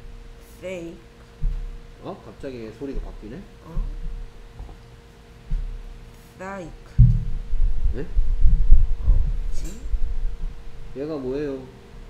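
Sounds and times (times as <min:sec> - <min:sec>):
low thudding and rumbling: 0:01.4 - 0:04.8, 0:05.4 - 0:06.0, 0:06.9 - 0:11.4.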